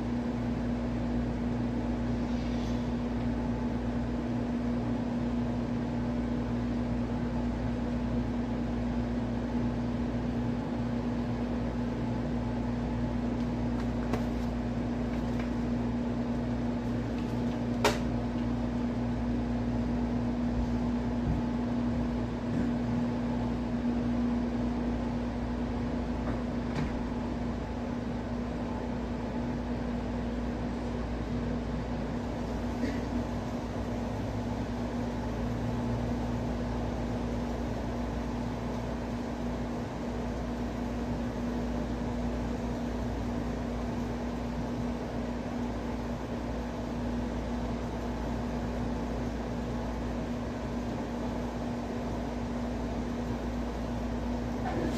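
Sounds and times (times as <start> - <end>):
low mechanical hum: 0.0 - 54.9.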